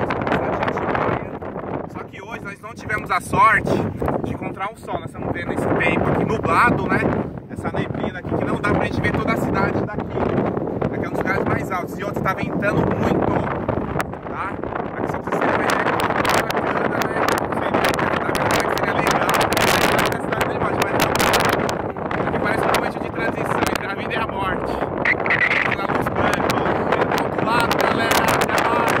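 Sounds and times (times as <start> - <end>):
man talking: 0.0 - 13.5, 14.3 - 21.3, 22.0 - 29.0
strong wind buffeting microphone: 0.0 - 29.0.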